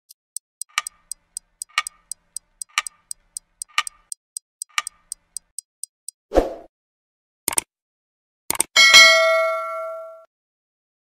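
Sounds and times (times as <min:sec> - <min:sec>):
clock ticking: 0:00.0 - 0:06.2, 0:07.5 - 0:07.7, 0:08.5 - 0:08.7.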